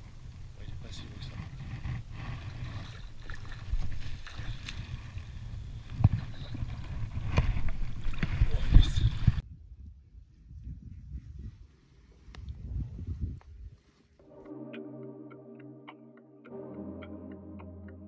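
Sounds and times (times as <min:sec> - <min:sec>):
water sloshing and splashing: 0:02.4 - 0:09.4.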